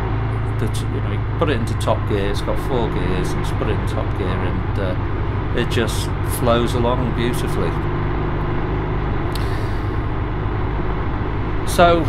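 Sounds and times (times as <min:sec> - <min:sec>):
motorcycle engine running: 0:00.0 - 0:12.0
wind and road noise: 0:00.0 - 0:12.0.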